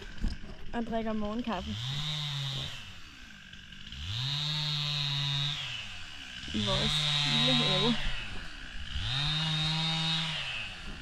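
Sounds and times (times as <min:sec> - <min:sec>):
small motor revving: 0:00.0 - 0:11.0.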